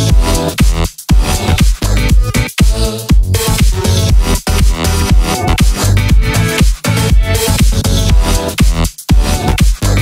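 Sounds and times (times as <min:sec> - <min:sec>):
electro dance music: 0:00.0 - 0:10.0.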